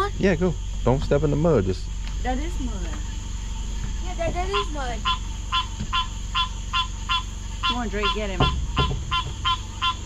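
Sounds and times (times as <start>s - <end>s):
steady low hum: 0.0s - 10.0s
frog calling: 1.8s - 10.0s.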